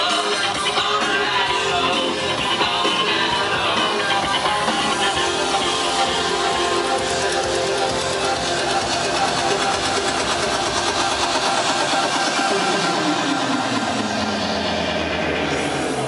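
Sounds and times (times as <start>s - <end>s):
electronic dance music: 0.0s - 16.0s
tone sliding downward in pitch: 0.9s - 16.0s.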